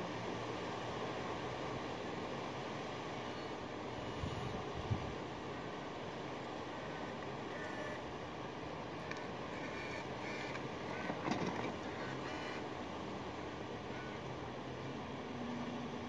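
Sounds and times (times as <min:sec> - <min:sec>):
ride-on vehicle motor hum: 0:00.0 - 0:16.0
tyre and street noise hiss: 0:00.0 - 0:16.0.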